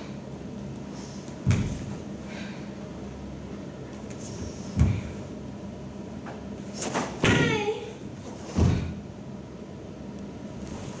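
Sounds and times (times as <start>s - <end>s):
person shouting kiai: 7.2s - 8.0s.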